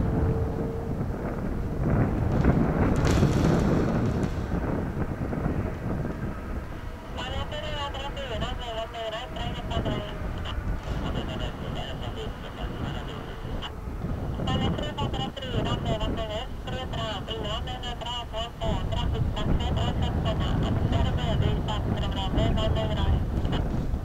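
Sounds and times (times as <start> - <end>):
airliner engines rumbling: 0.0 - 24.0.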